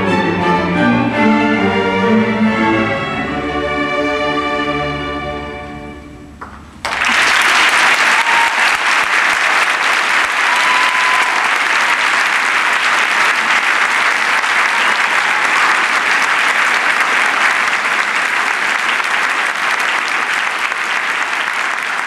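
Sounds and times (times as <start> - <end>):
audience applauding: 6.4 - 22.0.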